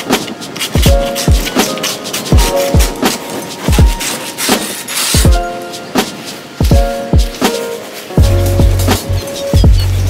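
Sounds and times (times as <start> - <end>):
ice scraper rasping on window: 0.0 - 6.3
background music with kick drum: 0.0 - 10.0.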